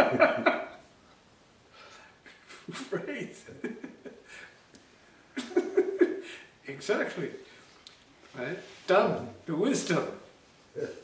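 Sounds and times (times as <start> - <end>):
man's breathy laughter: 5.3 - 6.5.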